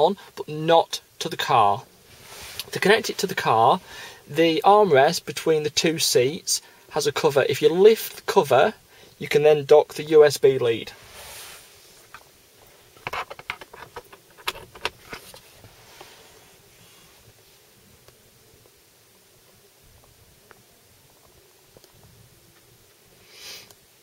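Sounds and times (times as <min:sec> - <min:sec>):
plastic clicks and knocks: 0:13.0 - 0:15.4.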